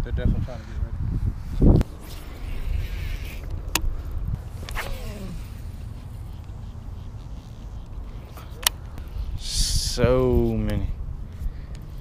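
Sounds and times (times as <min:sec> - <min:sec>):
wind rumbling on microphone: 0:00.0 - 0:12.0
fishing reel whirring: 0:02.0 - 0:03.8, 0:04.4 - 0:09.2.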